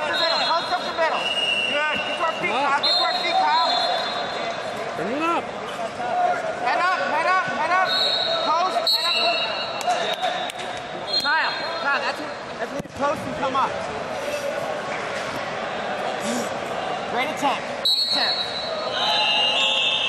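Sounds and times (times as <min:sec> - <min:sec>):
busy hall background noise: 0:00.0 - 0:20.0.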